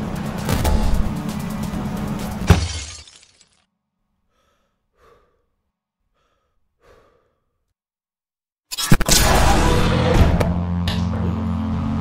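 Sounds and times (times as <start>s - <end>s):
glass breaking crash: 2.4s - 3.6s.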